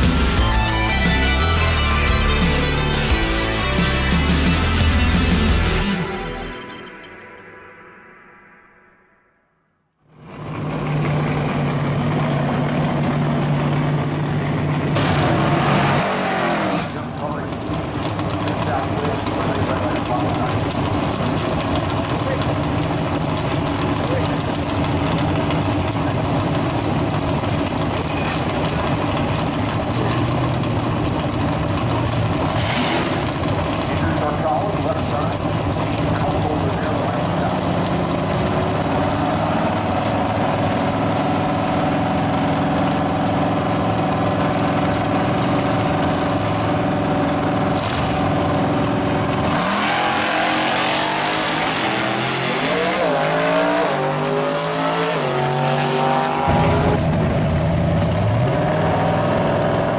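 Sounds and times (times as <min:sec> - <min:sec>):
drag car engine running: 0:00.0 - 0:06.6, 0:10.1 - 0:59.9
music: 0:00.0 - 0:09.8.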